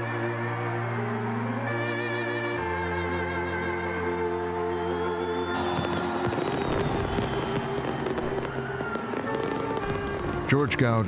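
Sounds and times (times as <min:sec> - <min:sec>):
background music: 0:00.0 - 0:11.0
fireworks popping and crackling: 0:05.5 - 0:11.0.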